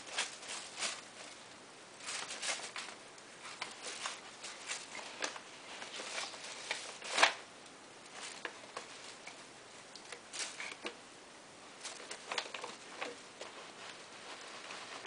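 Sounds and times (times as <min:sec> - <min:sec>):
plastic bag crinkling: 0:00.0 - 0:07.4, 0:08.1 - 0:11.0, 0:11.8 - 0:15.0.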